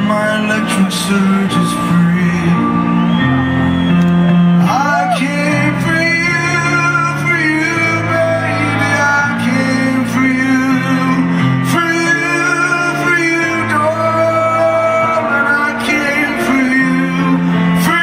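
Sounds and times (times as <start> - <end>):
man singing slow song: 0.0 - 3.3, 4.6 - 18.0.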